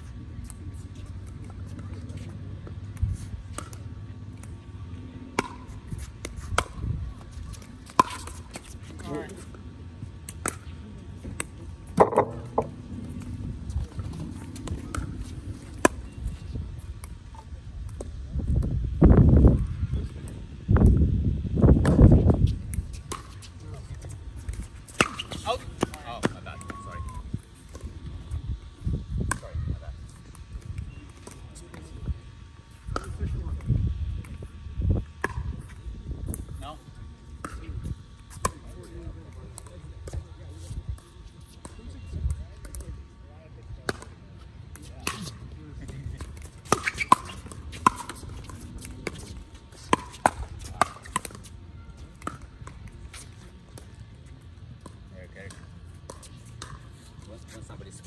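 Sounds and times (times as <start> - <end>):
faint voices: 23.2 - 34.7.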